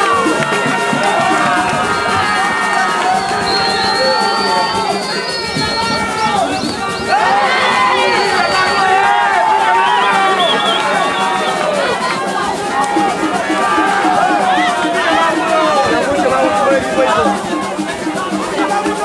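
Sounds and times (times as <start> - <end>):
music playing: 0.0 - 19.0
spectators shouting: 0.0 - 19.0.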